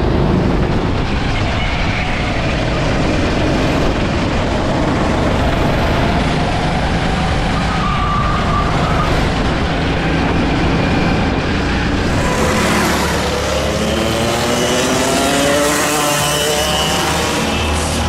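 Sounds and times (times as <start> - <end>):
wind noise on microphone: 0.0 - 14.5
kart engine at speed: 0.0 - 18.0.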